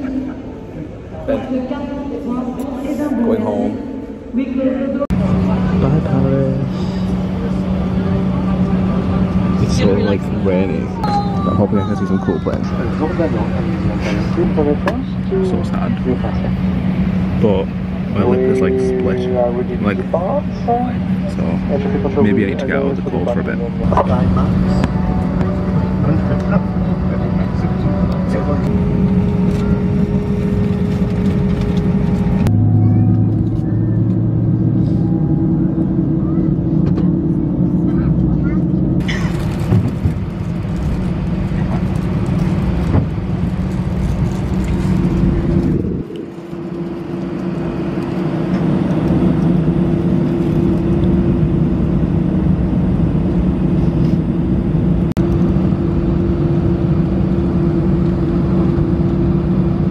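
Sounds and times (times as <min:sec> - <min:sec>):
jet engine drone in cabin: 0:00.0 - 0:59.9.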